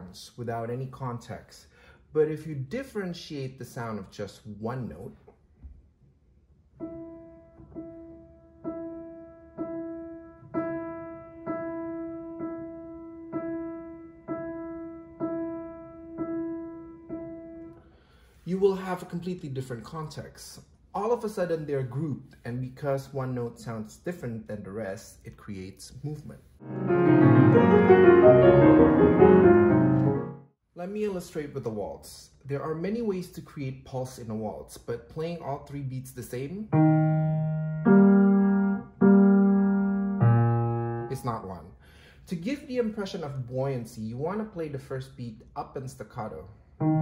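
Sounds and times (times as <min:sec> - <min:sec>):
piano music: 0:06.8 - 0:17.8, 0:26.6 - 0:30.5, 0:36.6 - 0:41.3, 0:46.8 - 0:47.0
piano repeating one note: 0:26.6 - 0:30.4, 0:36.7 - 0:41.3, 0:46.8 - 0:47.0.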